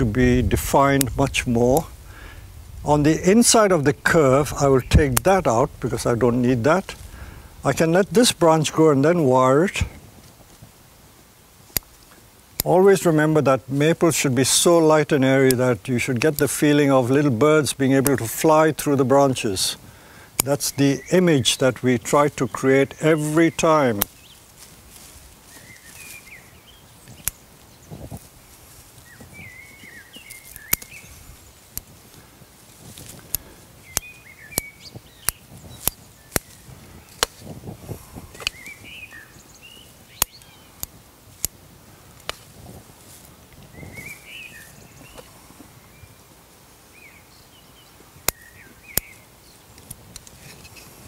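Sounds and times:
birds chirping: 0.0s - 10.1s, 11.8s - 42.4s, 43.4s - 51.0s
leaves rustling: 0.0s - 51.0s.

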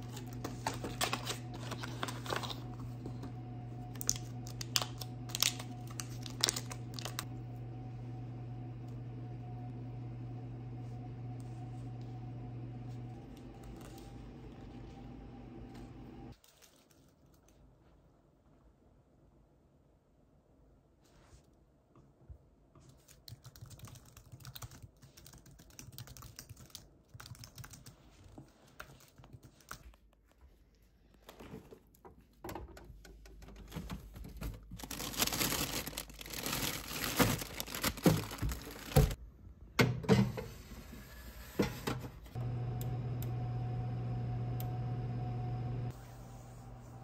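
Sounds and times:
plastic bags crinkling: 0.0s - 2.9s, 3.9s - 7.3s, 33.8s - 39.2s
electric oven humming: 0.0s - 16.3s, 39.8s - 47.0s
typing on computer keyboard: 23.1s - 28.0s.

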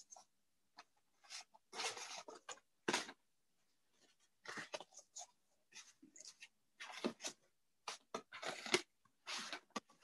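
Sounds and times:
scratchy paper rustles: 1.1s - 3.0s, 3.9s - 10.0s.

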